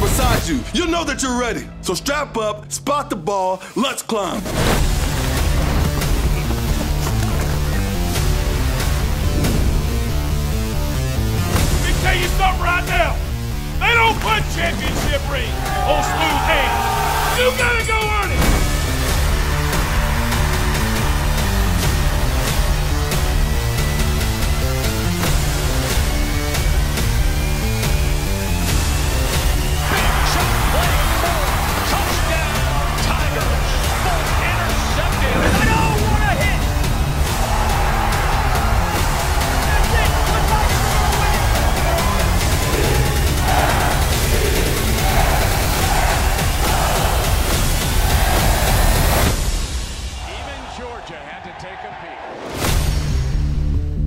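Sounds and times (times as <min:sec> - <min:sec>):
heavy bass hype music: 0:04.7 - 0:51.0, 0:52.5 - 0:54.0.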